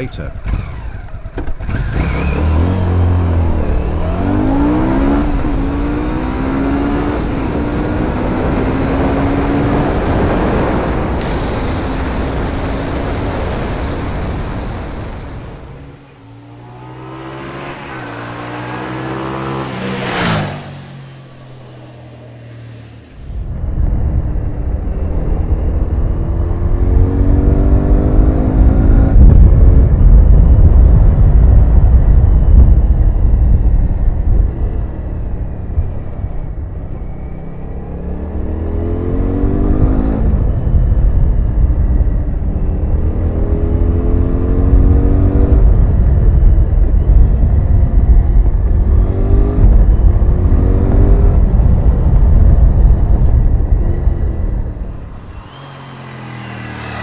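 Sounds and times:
motorcycle engine revving: 0.0 - 29.8, 47.4 - 57.0
road rumble: 0.0 - 57.0
wind noise: 0.0 - 57.0.

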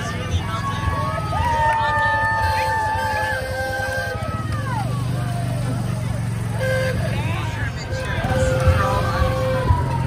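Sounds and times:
people's voices: 0.0 - 10.0
vehicle engine humming: 0.0 - 10.0.

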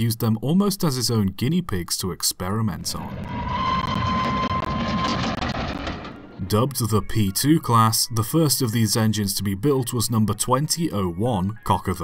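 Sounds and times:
train rumble: 3.0 - 6.7
train whistle: 3.3 - 5.3.

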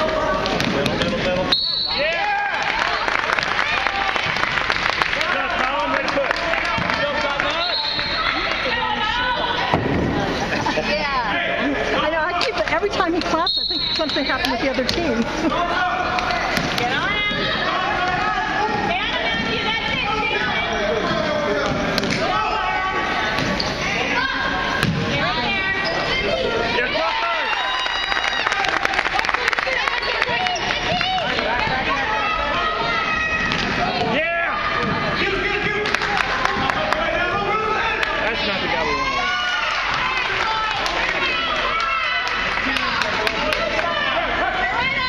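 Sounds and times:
voices of players and spectators: 0.0 - 45.0
referee's whistle blast: 1.5 - 2.0, 7.6 - 8.2, 13.4 - 14.5.

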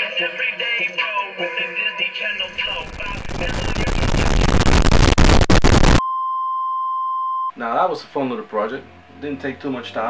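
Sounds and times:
static-like hiss with crackles: 2.4 - 6.0.

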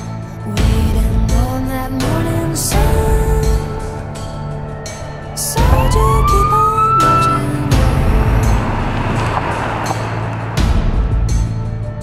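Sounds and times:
background music: 0.0 - 12.0
police siren wail: 4.6 - 10.5.

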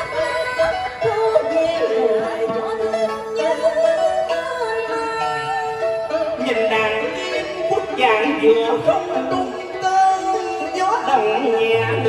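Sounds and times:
instrumental backing: 0.0 - 12.0
person singing with vibrato: 0.0 - 12.0.

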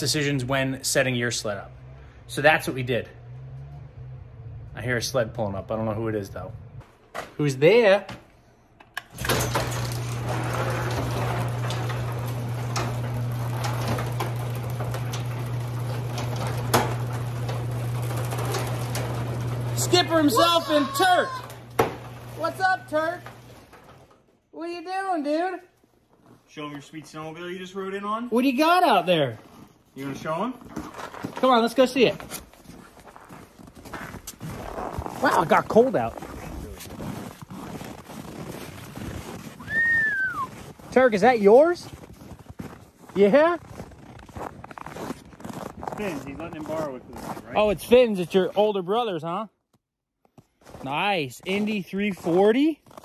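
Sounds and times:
door rollers rattling in tracks: 9.0 - 24.3
garage door motor hum: 9.0 - 24.4
footsteps crunching on snow: 29.2 - 47.9, 50.3 - 53.0.

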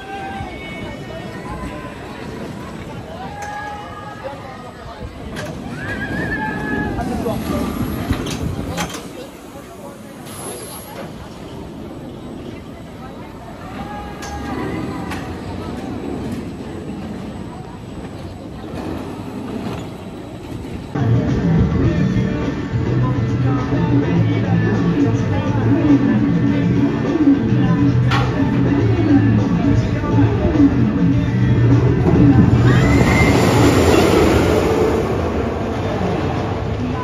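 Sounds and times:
roller coaster running on track: 0.0 - 37.0
voices: 0.0 - 37.0
high squeal: 32.0 - 36.0.

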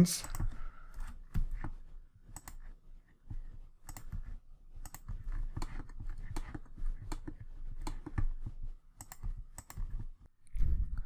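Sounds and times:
mouse and keyboard clicks: 2.3 - 2.7, 3.8 - 8.3, 9.0 - 10.0.

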